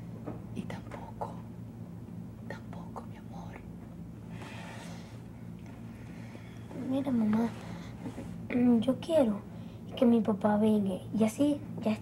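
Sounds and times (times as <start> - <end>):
steady low hum: 0.0 - 12.0
person whispering softly: 2.4 - 3.7.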